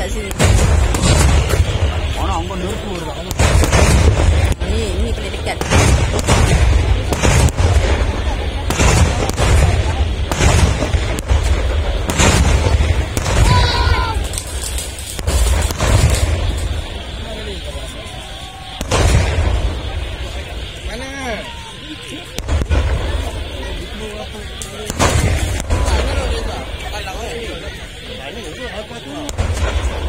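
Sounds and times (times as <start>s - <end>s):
cannon booms with rumble: 0.1s - 17.2s, 18.7s - 20.8s, 22.3s - 24.0s, 24.8s - 26.8s, 29.3s - 30.0s.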